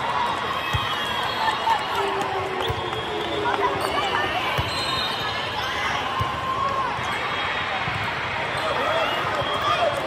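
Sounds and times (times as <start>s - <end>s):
chatter in large hall: 0.0s - 10.0s.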